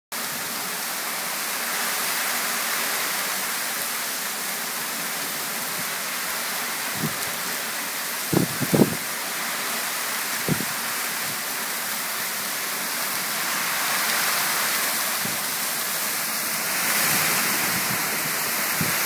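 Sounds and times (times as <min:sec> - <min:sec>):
heavy rain on wet street: 0:00.1 - 0:19.0.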